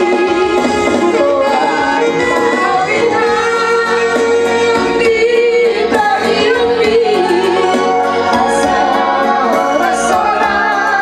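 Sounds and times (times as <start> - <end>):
instrumental accompaniment: 0.0 - 11.0
woman singing into microphone: 0.0 - 11.0.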